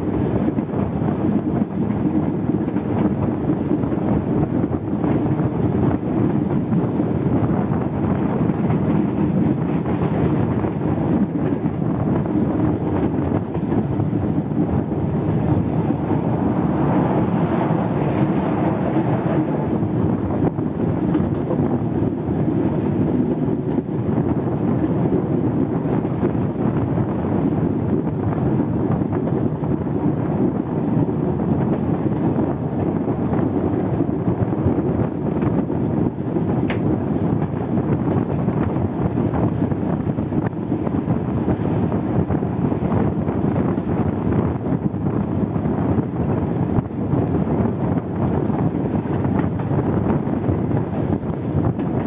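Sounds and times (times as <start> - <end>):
rail car rumbling on track: 0.0 - 52.0
wind rush on microphone: 0.0 - 52.0.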